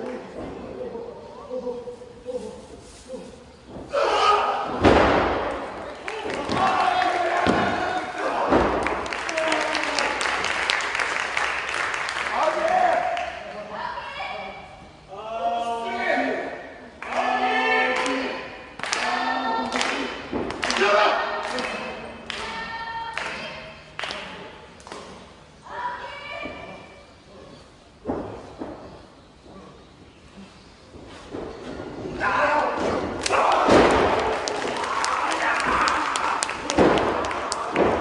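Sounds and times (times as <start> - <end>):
bodies hitting ring canvas: 3.7 - 9.2, 28.0 - 29.9, 30.9 - 34.8
shouting in a hall: 3.9 - 4.8, 6.0 - 10.3, 32.2 - 38.0
sharp slaps and thuds: 32.8 - 34.7.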